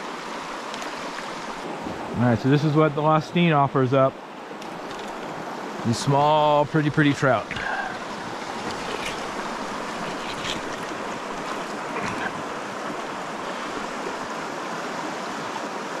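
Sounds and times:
stream flowing: 0.0 - 16.0.

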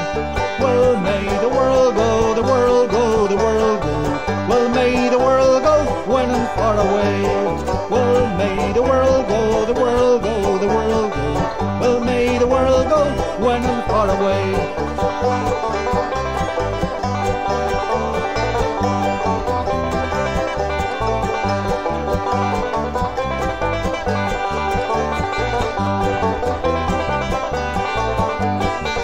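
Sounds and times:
person singing: 0.0 - 22.6
banjo picking: 0.0 - 29.0
guitar: 0.0 - 29.0
steady beat: 4.0 - 29.0.

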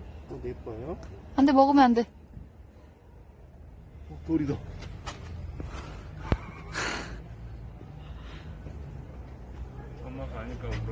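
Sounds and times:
sharp breathy gasp: 5.7 - 8.8.

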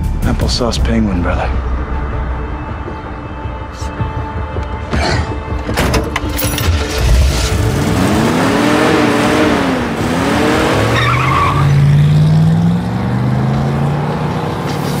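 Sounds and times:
car engine revving: 6.7 - 15.0.

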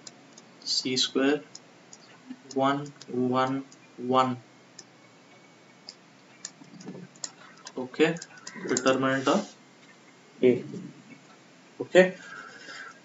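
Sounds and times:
person speaking: 0.6 - 4.5, 6.4 - 9.6, 10.4 - 11.2.

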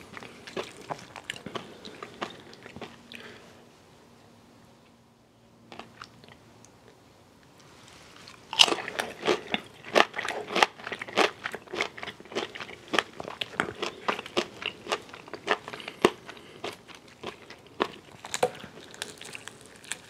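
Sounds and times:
chewing crispy fried chicken: 0.0 - 3.4, 8.2 - 20.0.

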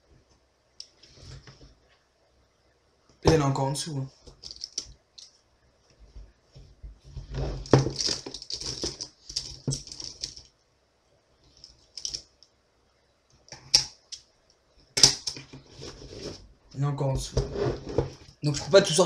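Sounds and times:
plastic pens clattering: 4.3 - 4.9, 7.6 - 10.5, 11.6 - 12.2.

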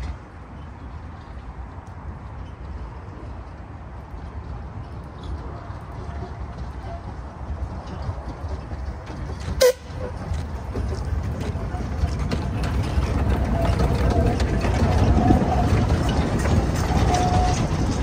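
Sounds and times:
steam train passing: 0.0 - 18.0
wheels rumbling on rails: 0.0 - 18.0
steam whistle toot: 9.6 - 9.9.

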